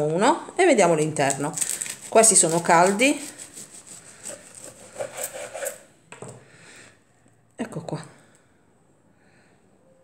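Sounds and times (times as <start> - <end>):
knife sawing through crust: 1.6 - 5.9.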